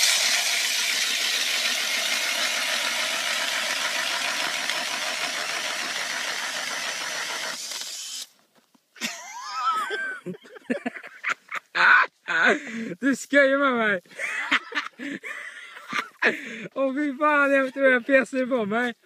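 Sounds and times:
auger blades grinding ice: 0:00.0 - 0:08.3
drill motor whirring: 0:00.0 - 0:08.4.

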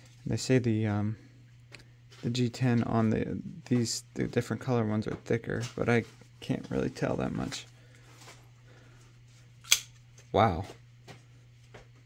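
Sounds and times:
knife blade snapping open: 0:09.7 - 0:09.9.

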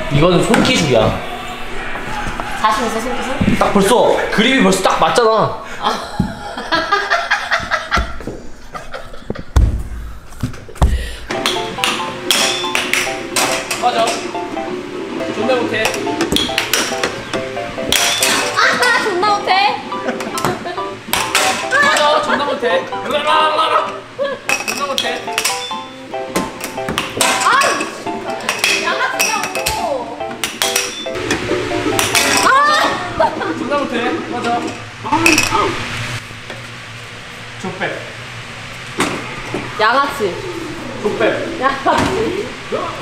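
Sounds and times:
air hockey puck clacking: 0:11.3 - 0:14.2, 0:15.9 - 0:17.2, 0:17.9 - 0:19.0, 0:20.2 - 0:22.0, 0:26.3 - 0:29.8, 0:30.4 - 0:31.0
air hockey puck clacks: 0:11.3 - 0:14.2
light background music: 0:11.3 - 0:24.2, 0:24.8 - 0:32.8.

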